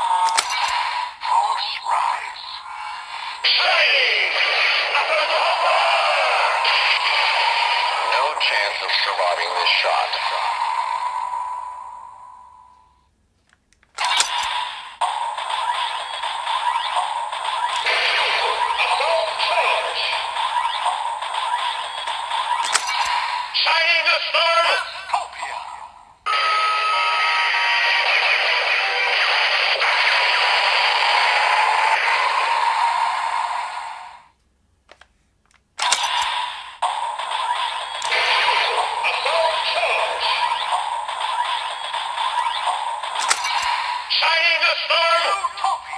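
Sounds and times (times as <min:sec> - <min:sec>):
toy voice line: 0:00.0 - 0:10.7, 0:17.7 - 0:20.9, 0:38.0 - 0:41.0, 0:42.6 - 0:45.9
plastic toy clicks: 0:00.2 - 0:00.8, 0:13.7 - 0:14.6, 0:22.5 - 0:23.2, 0:34.9 - 0:36.3, 0:43.1 - 0:43.8
steady high electronic tone: 0:14.0 - 0:23.6, 0:36.8 - 0:44.2.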